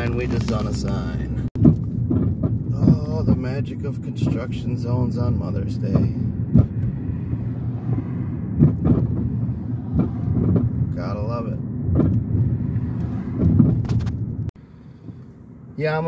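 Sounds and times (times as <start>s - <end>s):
car engine and tyres rumbling: 0.0s - 16.0s.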